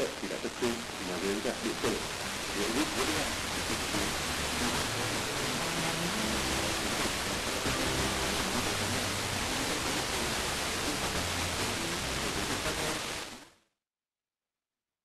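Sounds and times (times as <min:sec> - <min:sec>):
faint radio broadcast audio: 0:00.0 - 0:13.5
radio static hiss: 0:00.0 - 0:13.6.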